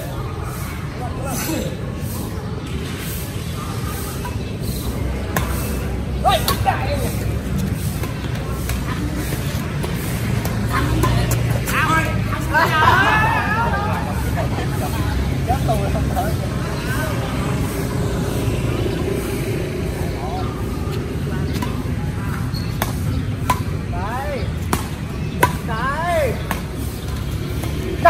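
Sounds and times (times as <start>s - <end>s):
players calling out: 0.0s - 23.1s
city traffic rumble: 0.0s - 28.0s.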